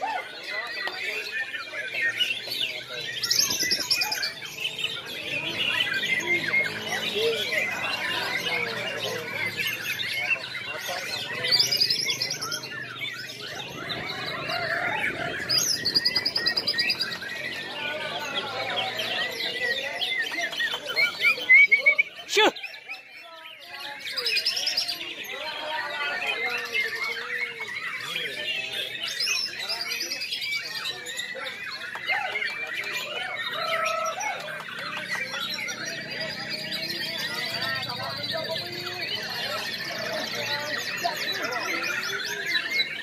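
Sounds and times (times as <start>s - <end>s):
birds singing whistled phrases: 0.0s - 43.0s.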